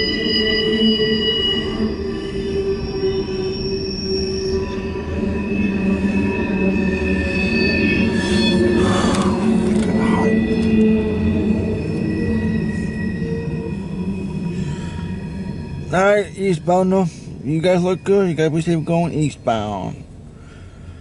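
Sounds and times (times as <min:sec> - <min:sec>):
train wheels squealing: 0:00.0 - 0:21.0
low rumble of passing cars: 0:01.2 - 0:21.0.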